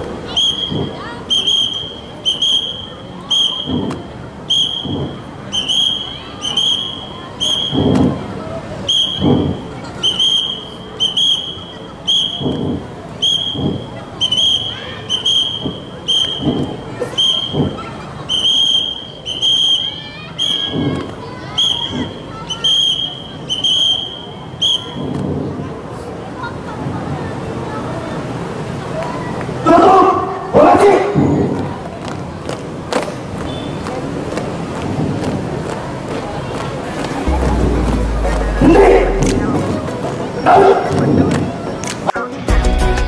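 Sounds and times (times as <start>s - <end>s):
whistle blasts: 0.3s - 7.9s, 8.8s - 20.9s, 21.5s - 25.1s.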